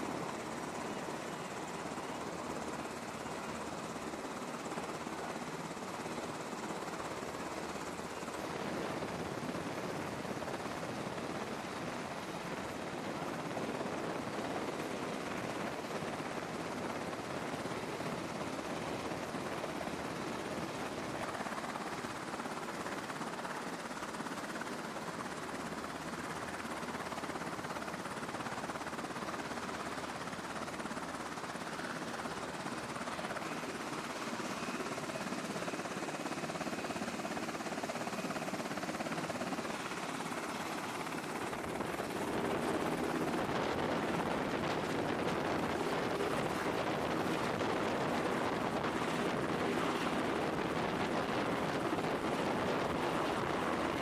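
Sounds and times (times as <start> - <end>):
helicopter rotor and turbine noise: 0.0 - 54.0.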